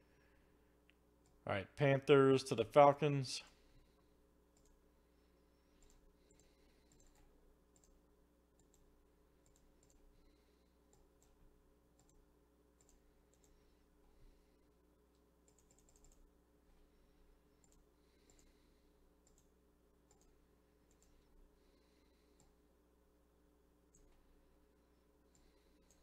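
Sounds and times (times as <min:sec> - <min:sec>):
low electrical hum: 0:00.0 - 0:26.0
computer mouse and keyboard clicks: 0:05.8 - 0:08.0, 0:08.6 - 0:10.0, 0:15.4 - 0:16.3, 0:19.2 - 0:19.5, 0:20.9 - 0:21.2.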